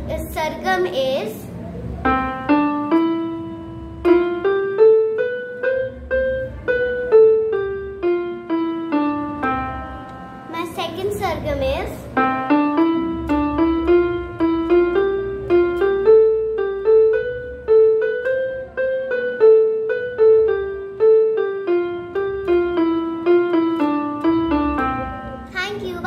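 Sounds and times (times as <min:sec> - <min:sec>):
electronic keyboard piano melody: 0:00.0 - 0:26.0.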